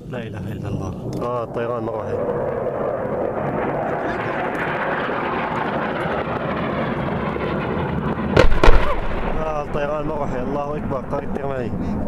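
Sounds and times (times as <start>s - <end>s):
steady rushing noise: 0.0s - 12.0s
bombs exploding: 8.3s - 10.1s.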